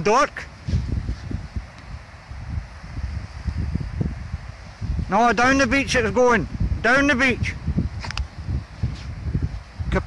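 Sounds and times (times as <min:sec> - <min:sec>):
faint outdoor hiss: 0:00.0 - 0:10.0
wind buffeting microphone: 0:00.0 - 0:10.0.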